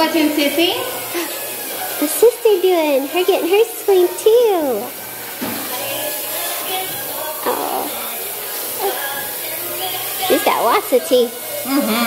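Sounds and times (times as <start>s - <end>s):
dental suction hissing: 6.6s - 12.0s.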